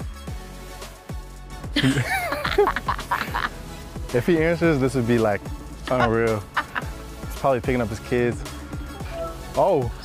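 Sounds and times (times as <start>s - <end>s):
background music with steady beat: 0.0s - 10.0s
woman laughing: 1.8s - 3.6s, 5.9s - 7.0s.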